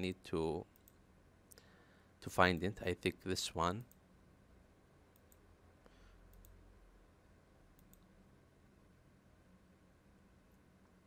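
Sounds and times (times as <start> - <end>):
faint computer mouse clicks: 5.1 - 5.4, 6.3 - 6.6, 7.8 - 8.1.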